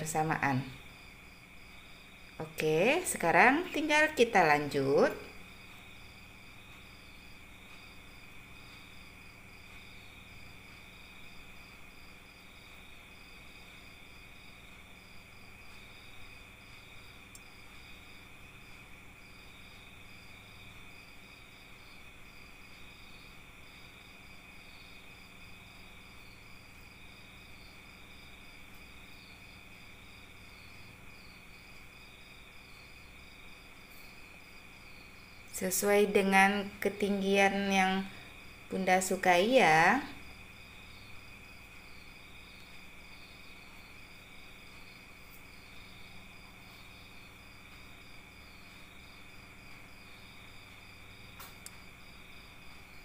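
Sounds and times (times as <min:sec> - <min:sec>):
crickets chirping: 0:00.0 - 0:53.0.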